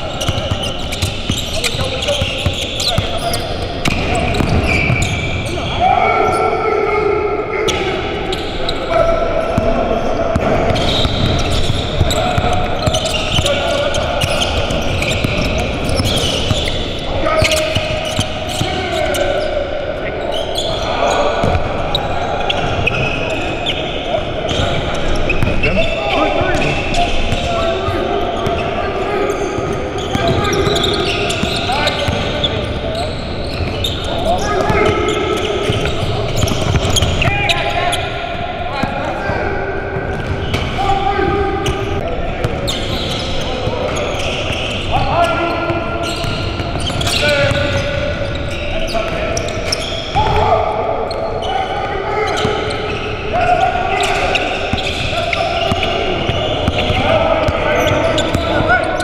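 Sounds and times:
indistinct voices echoing: 0.0 - 59.0
basketballs bouncing on hardwood: 3.8 - 5.1.

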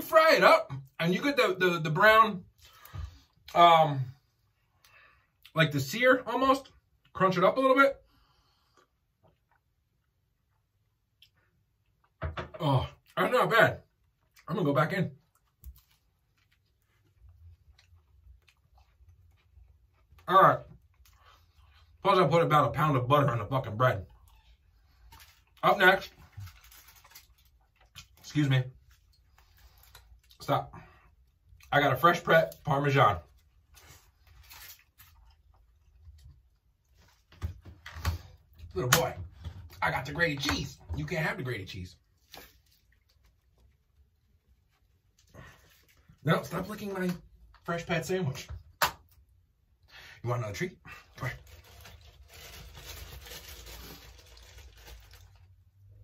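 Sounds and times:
treat bag crinkling: 24.2 - 30.5, 32.0 - 36.2, 50.9 - 55.7.

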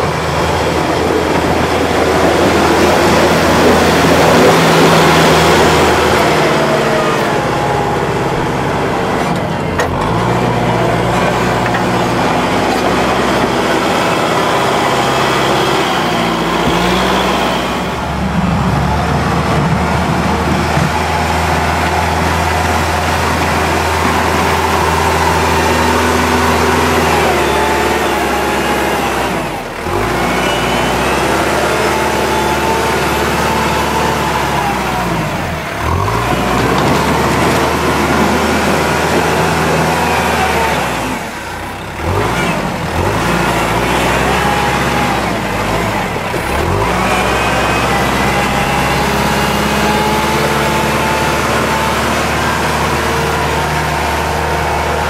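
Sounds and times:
tractor diesel engine under load: 0.0 - 55.0.

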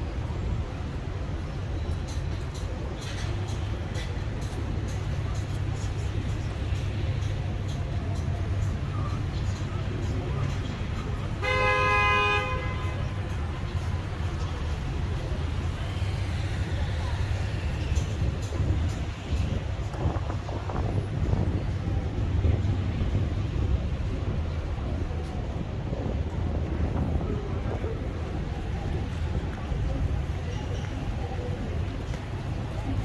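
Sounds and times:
street traffic rumble: 0.0 - 33.0
car horn honk: 11.4 - 13.0.

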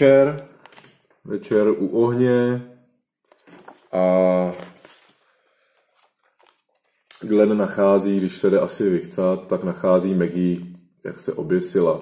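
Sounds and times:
paper pages rustling: 3.2 - 7.9.

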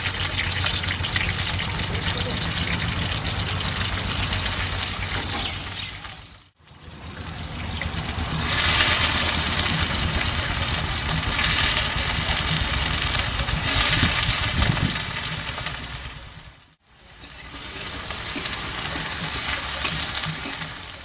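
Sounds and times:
oil sizzling in a wok: 0.0 - 21.0.

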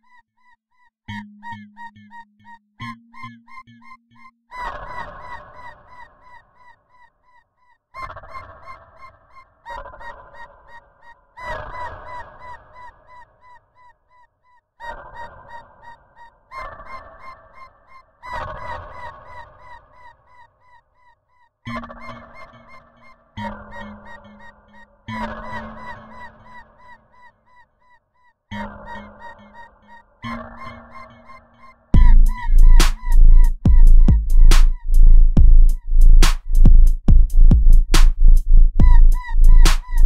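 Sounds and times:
held low tone: 32.0 - 40.0
sub bass: 32.0 - 40.0.

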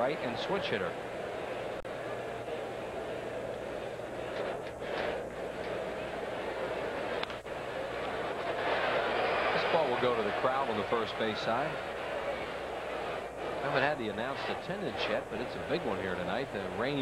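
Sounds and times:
ballpark crowd murmuring: 0.0 - 17.0.

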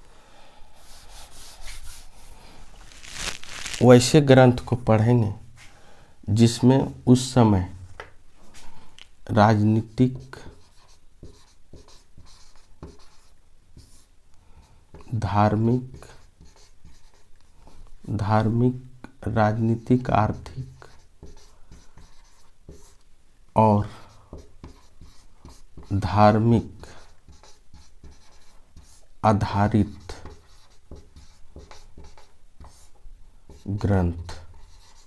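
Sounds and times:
marker writing on whiteboard: 10.0 - 14.1, 14.9 - 18.3, 19.8 - 23.0, 23.8 - 35.0.

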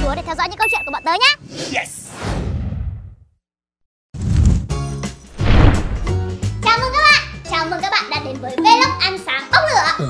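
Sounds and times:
whoosh: 5.3 - 6.3.

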